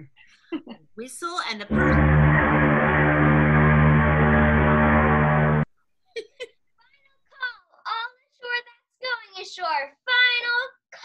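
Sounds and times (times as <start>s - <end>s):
ship's horn blast: 1.7s - 5.7s.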